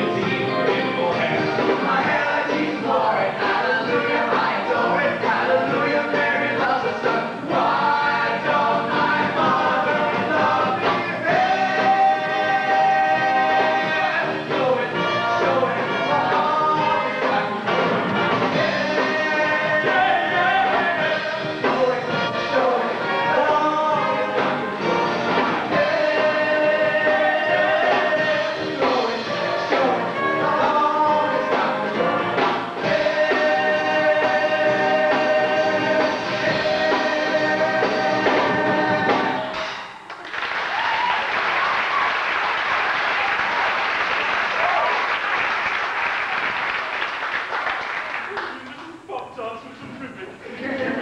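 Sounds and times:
mixed voices singing in chorus: 0:00.0 - 0:39.7
live rock band: 0:00.0 - 0:40.2.

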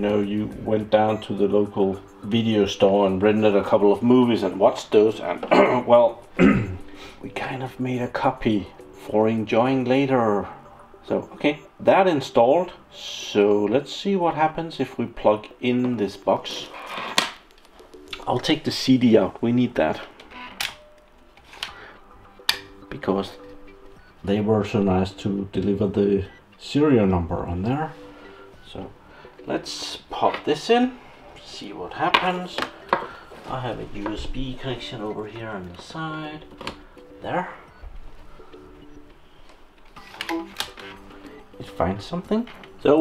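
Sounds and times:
laptop hardware chime: 0:00.0 - 0:43.0.

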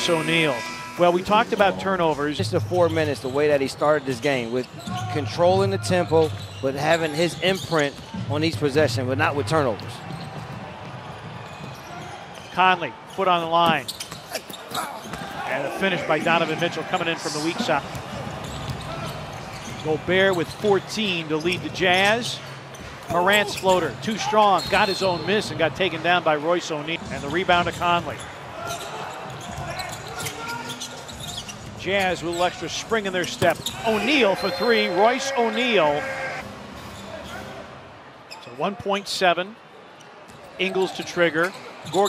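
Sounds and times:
arena background noise: 0:00.0 - 0:42.0.

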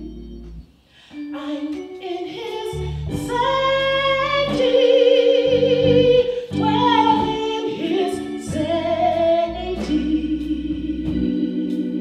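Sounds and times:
organ chords: 0:00.0 - 0:12.0
woman singing gospel: 0:01.0 - 0:12.0.

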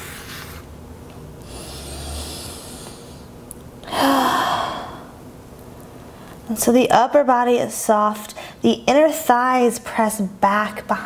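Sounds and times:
woman sighing: 0:03.8 - 0:05.1.

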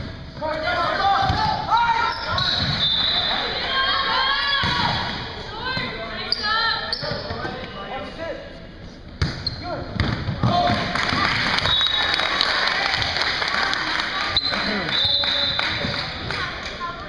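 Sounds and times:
volleyball struck by hand: 0:10.0 - 0:11.2.

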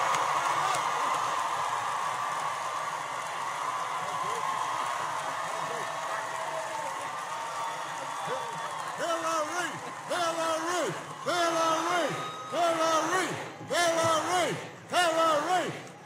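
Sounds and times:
crowd cheering and applauding: 0:00.0 - 0:16.0.

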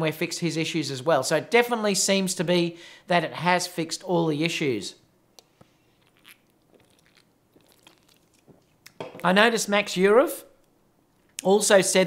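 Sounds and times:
person sipping from a can: 0:05.6 - 0:08.5.

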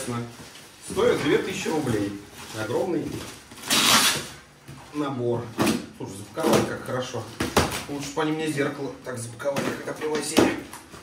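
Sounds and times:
plastic packaging rustling: 0:00.0 - 0:04.6.

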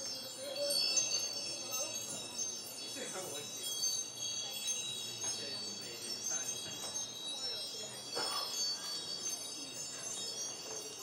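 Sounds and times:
high chime tones ringing: 0:00.0 - 0:11.0.

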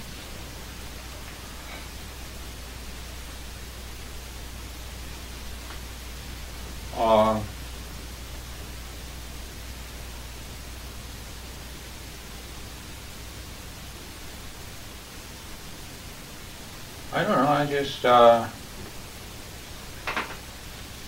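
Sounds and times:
tape hiss: 0:00.0 - 0:21.0.

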